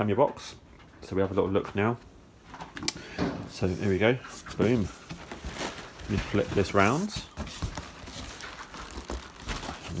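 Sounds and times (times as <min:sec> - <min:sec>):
packaging crinkling and rustling: 0:03.8 - 0:10.0.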